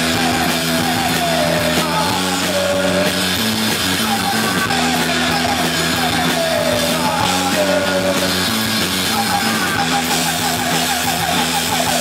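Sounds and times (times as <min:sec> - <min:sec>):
garage rock band playing: 0:00.0 - 0:12.0.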